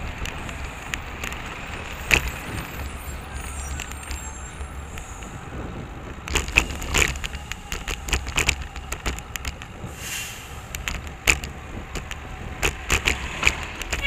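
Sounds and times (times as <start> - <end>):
bicycle rattles and knocks: 0.0 - 3.0, 3.6 - 10.0, 10.6 - 14.0
low rumble of road and wind: 0.0 - 14.0.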